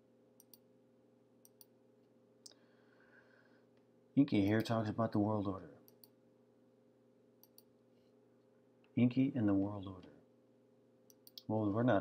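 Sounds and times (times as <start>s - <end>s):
computer mouse clicks: 0.4s - 0.6s, 1.4s - 1.7s, 5.8s - 6.2s, 7.4s - 7.7s, 11.1s - 11.5s.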